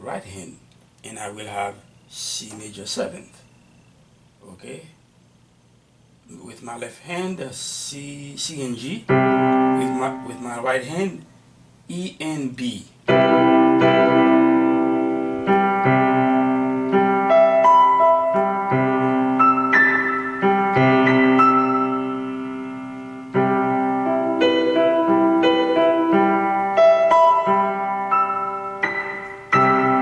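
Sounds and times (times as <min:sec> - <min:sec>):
electronic keyboard piano chords: 0:08.7 - 0:11.2, 0:13.0 - 0:30.0.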